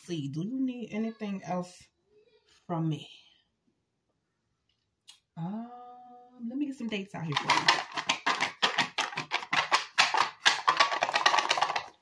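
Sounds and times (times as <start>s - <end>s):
paper slips rattling in box: 7.3s - 12.0s.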